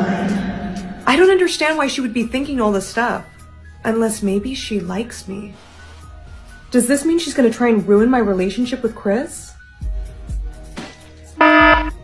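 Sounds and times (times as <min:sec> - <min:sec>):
background music with low beats: 0:09.6 - 0:12.0
buzzing alert tone: 0:11.4 - 0:12.0.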